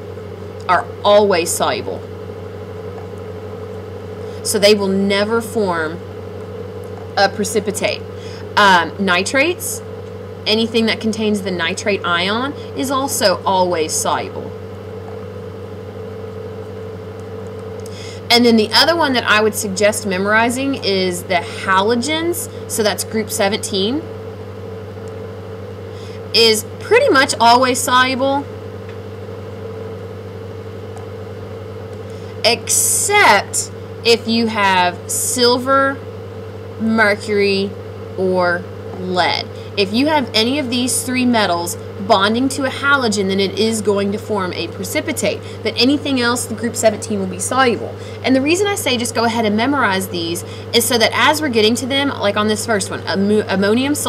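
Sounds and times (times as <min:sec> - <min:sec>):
low background hum: 0:00.0 - 0:54.0.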